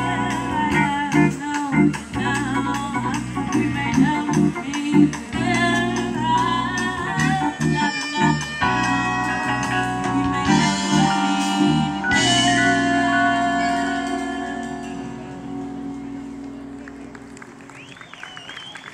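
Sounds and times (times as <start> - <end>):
live jazz band playing: 0.0 - 18.9.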